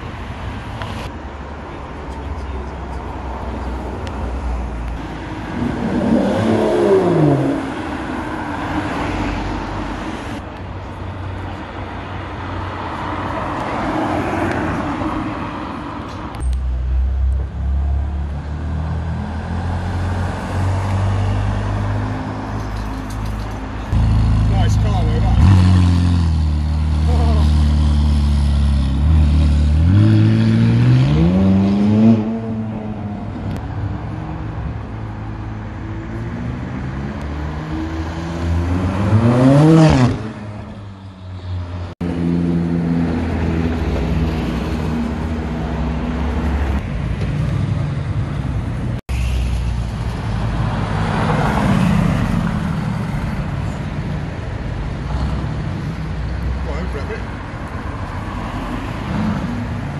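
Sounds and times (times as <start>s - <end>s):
car engine idling and revving: 16.4s - 49.1s.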